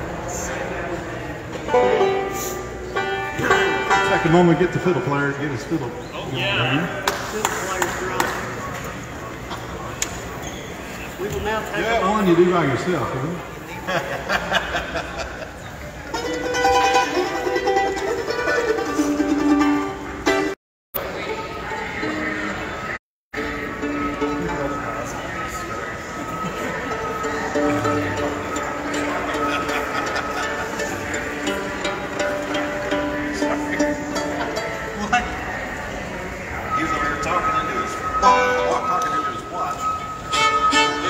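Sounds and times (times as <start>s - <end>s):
acoustic bluegrass string music: 0.0s - 6.1s, 15.8s - 41.0s
plucked banjo picking: 1.6s - 5.4s, 16.1s - 20.6s, 23.4s - 35.8s
fiddle melody: 1.7s - 5.8s, 23.4s - 41.0s.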